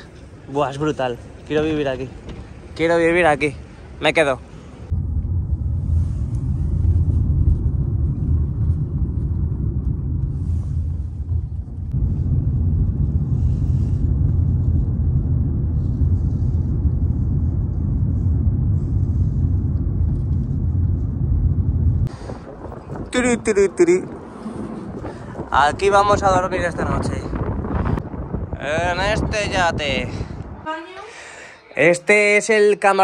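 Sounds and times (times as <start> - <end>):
car road and engine rumble: 0.0 - 28.6.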